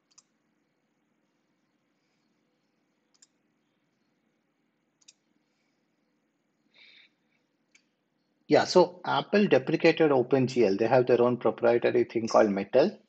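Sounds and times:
faint computer clicks: 0.0 - 0.4, 3.0 - 3.4, 5.0 - 5.3.

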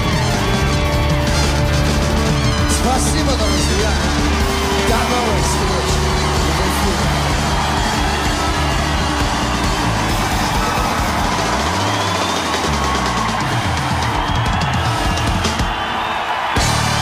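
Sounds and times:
sliding bass line: 0.0 - 12.1
live rock band: 0.0 - 17.0.

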